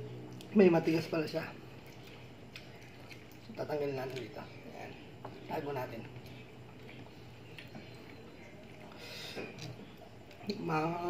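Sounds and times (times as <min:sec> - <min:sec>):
low steady hum: 0:00.0 - 0:11.0
man chewing with wet mouth clicks: 0:00.2 - 0:00.6, 0:01.7 - 0:05.3, 0:06.0 - 0:10.6.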